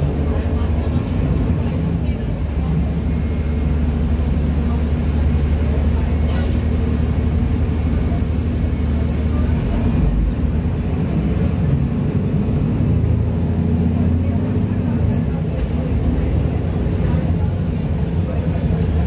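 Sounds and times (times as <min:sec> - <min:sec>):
bus diesel engine humming: 0:00.0 - 0:19.0.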